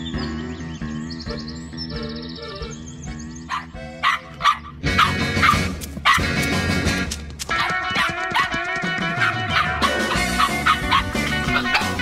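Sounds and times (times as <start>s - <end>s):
background music: 0.0s - 12.0s
cartoon dog barking: 3.5s - 6.3s, 7.6s - 8.6s, 9.2s - 12.0s.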